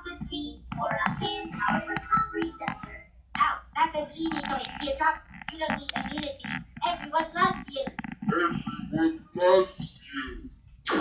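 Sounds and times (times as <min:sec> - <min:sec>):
faint low hum: 0:00.0 - 0:11.0
cartoon characters talking: 0:00.8 - 0:10.4.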